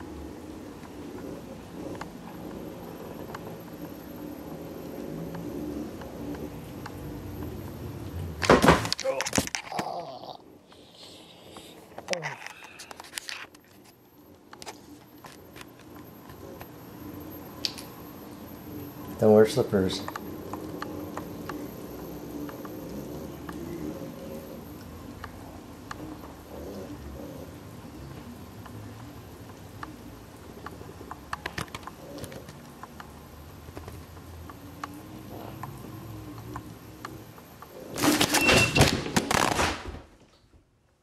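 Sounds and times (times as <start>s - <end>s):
hoverboard motors humming: 0.0s - 38.4s.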